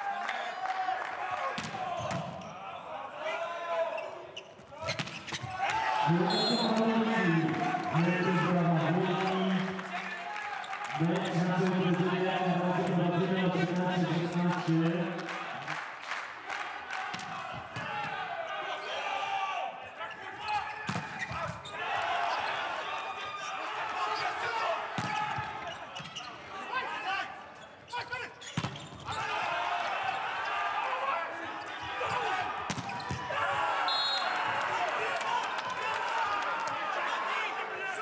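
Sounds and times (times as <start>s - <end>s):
players shouting: 0.0s - 15.6s, 16.7s - 38.0s.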